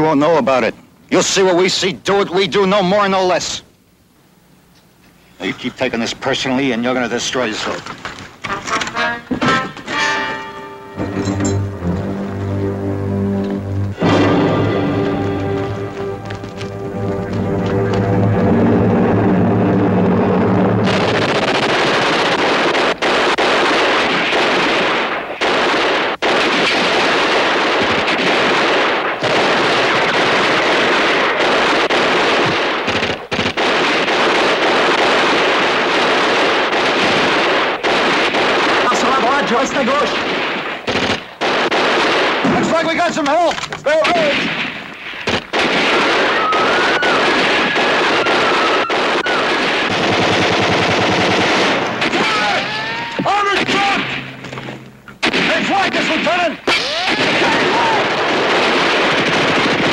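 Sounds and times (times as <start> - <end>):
machine-gun and rifle fire: 20.8 - 59.9.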